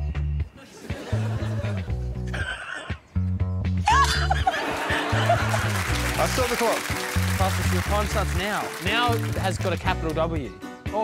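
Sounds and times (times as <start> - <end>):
music with low bass line: 0.0 - 2.5
laughter: 0.6 - 2.2, 3.9 - 5.9.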